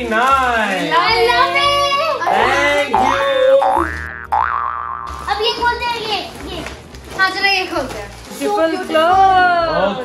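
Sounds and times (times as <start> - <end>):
comic boing sound effect: 2.9 - 5.3.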